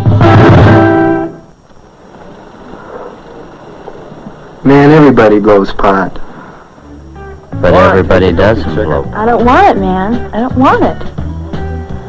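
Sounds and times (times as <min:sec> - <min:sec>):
film soundtrack hiss: 0:00.0 - 0:12.0.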